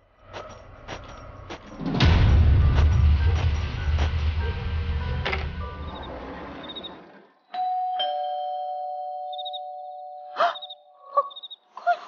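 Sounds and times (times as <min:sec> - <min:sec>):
two-tone doorbell chime: 0:07.5 - 0:11.0.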